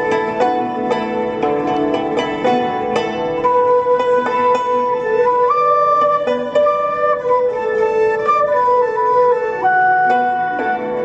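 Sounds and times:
plucked string accompaniment: 0.0 - 11.0
bamboo flute long held notes: 3.4 - 11.0.

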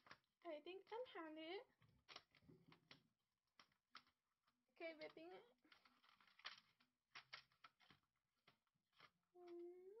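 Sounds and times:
small objects handled on tabletop: 0.0 - 10.0.

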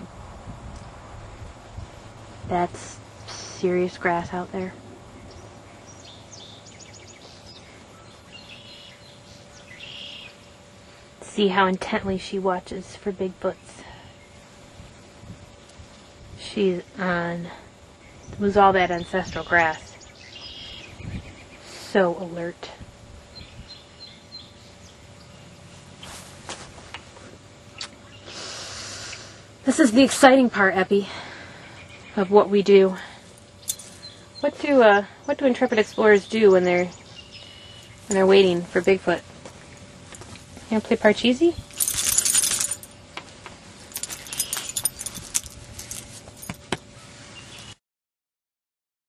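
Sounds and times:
faint high bird chirps: 18.2 - 21.4
rush of hiss: 28.3 - 29.4
small metal pieces jingling: 33.6 - 34.0, 41.7 - 43.0, 43.9 - 46.6.

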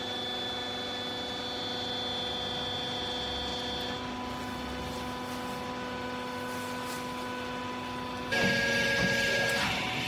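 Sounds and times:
hydraulic pump humming: 0.0 - 10.0
pump whine and hiss: 0.0 - 10.0.

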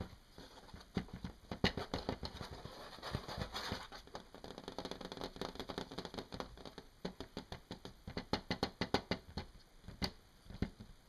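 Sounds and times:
fingertips scratching plastic mask: 0.0 - 10.8
fingertips tapping plastic mask: 0.0 - 11.0.

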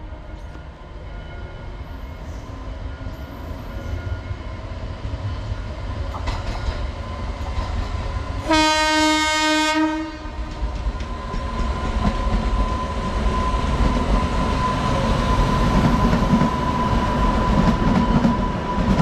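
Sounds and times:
locomotives rumbling on rails: 0.1 - 19.0
locomotive horn blast: 8.5 - 10.4.

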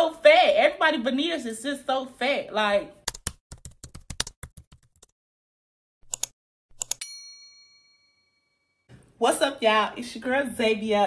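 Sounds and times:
bright bell ding: 7.0 - 8.8.

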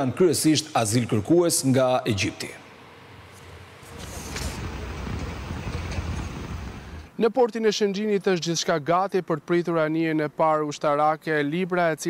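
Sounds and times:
outdoor background noise with rumble: 0.0 - 12.0.

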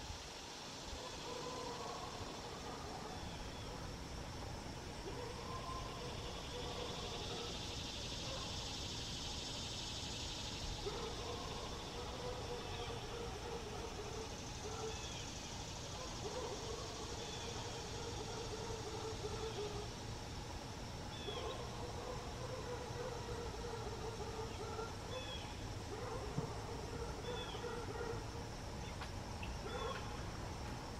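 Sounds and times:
faint insect drone: 0.0 - 30.9.

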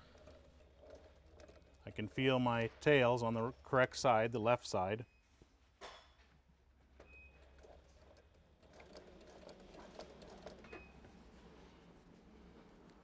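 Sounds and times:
sewing machine running: 7.6 - 10.7.

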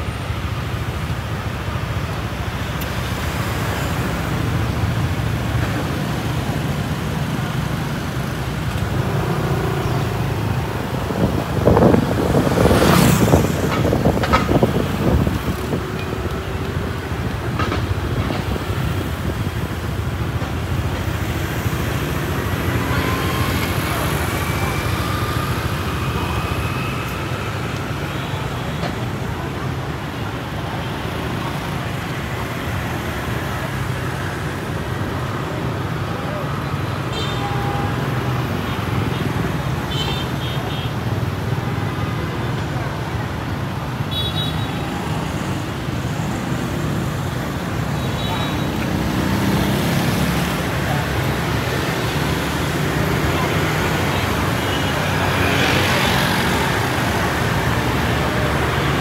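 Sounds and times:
city traffic rumble: 0.0 - 59.0.

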